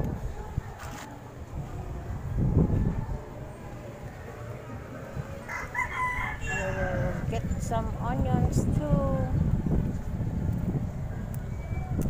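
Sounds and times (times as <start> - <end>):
low rumble: 1.2 - 12.0
rooster crowing: 5.4 - 7.3.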